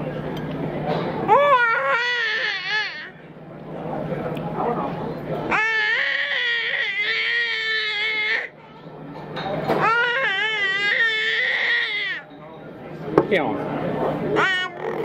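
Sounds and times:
baby crying: 0:01.3 - 0:03.2, 0:05.5 - 0:08.5, 0:09.8 - 0:12.2, 0:14.4 - 0:15.0.

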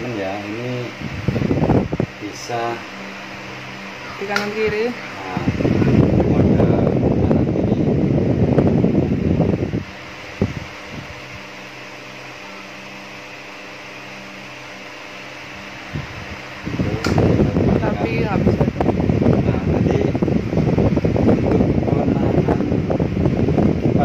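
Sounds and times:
fan air rushing on microphone: 0:00.0 - 0:24.0
fan motor hum: 0:00.0 - 0:24.0.

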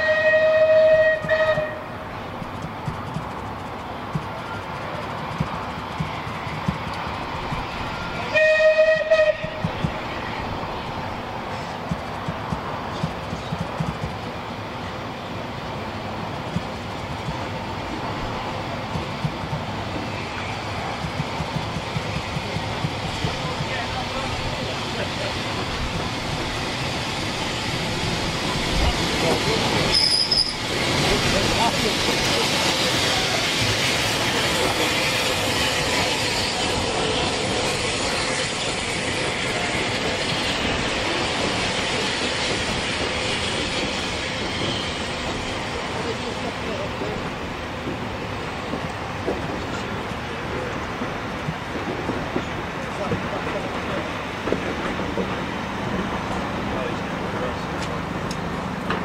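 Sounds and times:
steam locomotive passing: 0:00.0 - 0:59.0
high squeal: 0:29.9 - 0:30.7.

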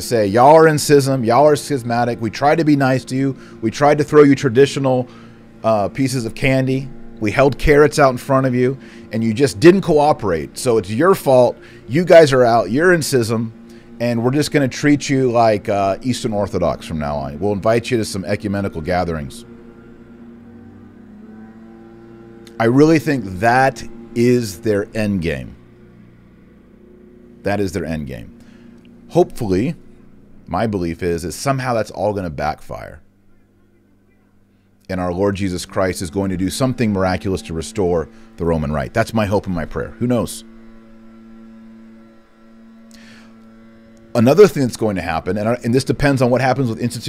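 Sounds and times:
leaf blowers droning: 0:00.0 - 0:47.0.

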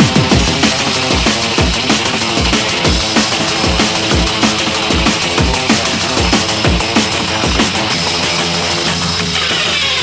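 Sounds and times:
distorted synth tones: 0:00.0 - 0:10.0.

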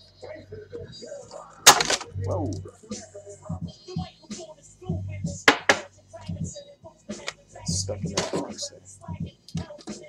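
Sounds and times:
person speaking: 0:02.0 - 0:02.7.

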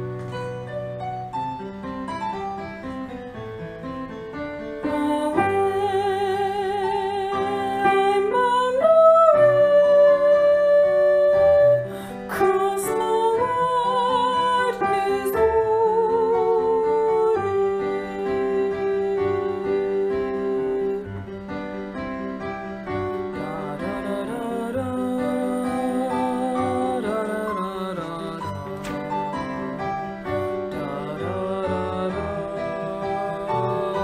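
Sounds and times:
piano accompaniment: 0:00.0 - 0:34.0.

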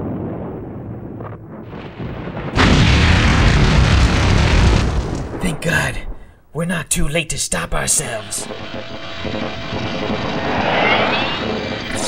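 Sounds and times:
sharp blast: 0:08.0 - 0:12.0
loud rushing noise: 0:08.2 - 0:12.0
rising whine: 0:08.2 - 0:12.0.

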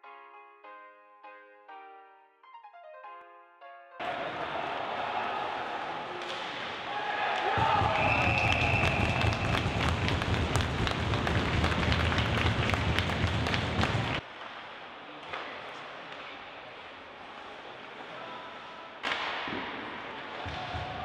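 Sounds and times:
players shouting: 0:04.0 - 0:14.2
hockey sticks and puck clacking: 0:06.0 - 0:18.2, 0:19.0 - 0:21.0
skates on ice: 0:06.2 - 0:21.0
referee's whistle: 0:07.6 - 0:09.8.

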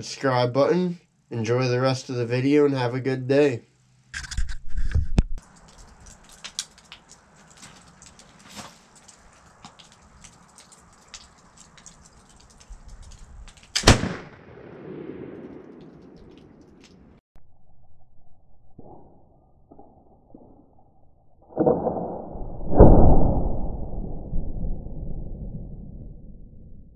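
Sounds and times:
faint ticks and clicks: 0:05.4 - 0:13.8
pistol shot: 0:13.7 - 0:17.1.

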